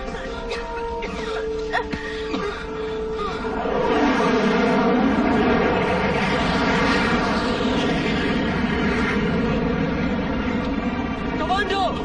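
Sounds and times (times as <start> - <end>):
aircraft engine droning: 0.0 - 12.0.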